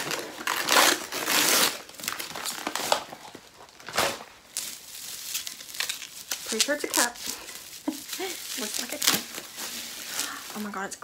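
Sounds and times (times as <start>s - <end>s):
gift wrapping crinkling: 0.0s - 11.0s.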